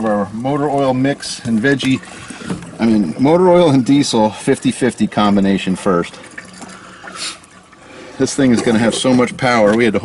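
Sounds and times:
liquid pouring into fuel filler: 5.1s - 10.0s.

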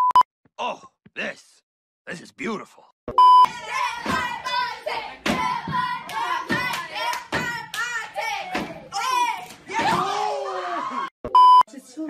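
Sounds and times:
electronic beep: 3.1s - 3.5s, 11.3s - 11.7s
excited voices shouting: 3.5s - 11.1s.

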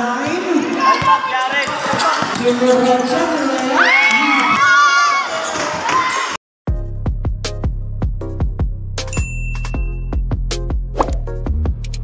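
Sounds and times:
basketball bouncing on court: 0.2s - 3.2s.

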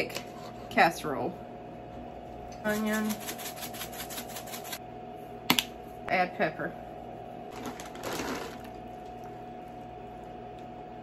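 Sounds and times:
faint steady hum: 0.0s - 11.0s
seasoning rattling in shaker bottle: 2.7s - 4.8s.

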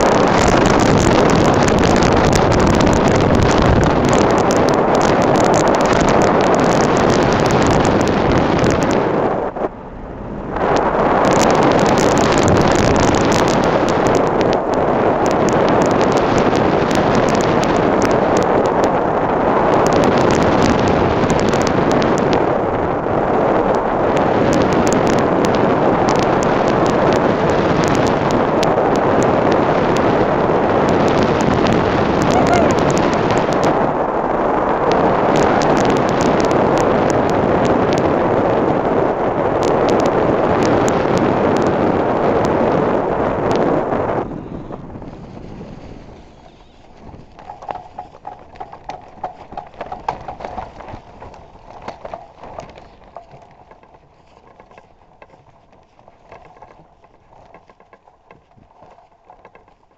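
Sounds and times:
rapid wind buffeting: 0.0s - 59.9s
wind rushing over microphone: 0.0s - 59.9s.

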